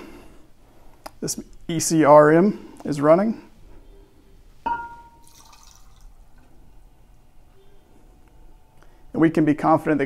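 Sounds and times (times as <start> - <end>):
glass bowl ringing: 4.6 - 5.8.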